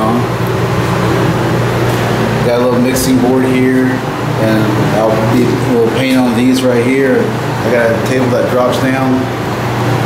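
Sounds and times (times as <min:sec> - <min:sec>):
fans rushing air with low hum: 0:00.0 - 0:10.0.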